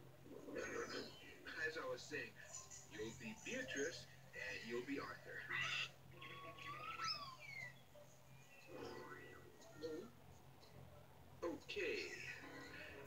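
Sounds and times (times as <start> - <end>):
cartoon soundtrack from television: 0.0 - 13.0.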